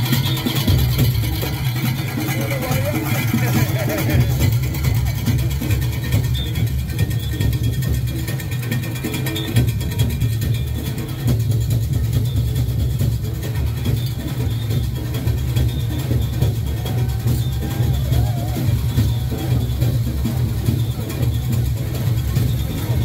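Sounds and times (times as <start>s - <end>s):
crowd voices: 0.0s - 23.0s
parade drums beating: 0.0s - 23.0s.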